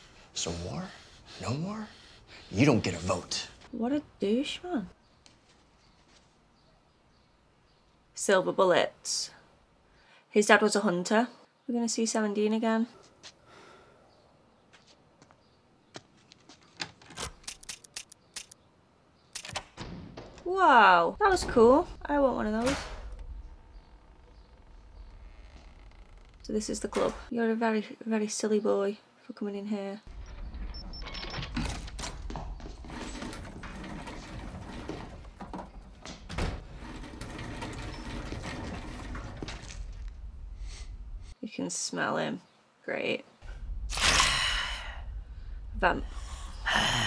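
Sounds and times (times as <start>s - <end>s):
sharp mechanical clicks: 17.2s - 18.6s
steady low drone: 43.4s - 47.0s.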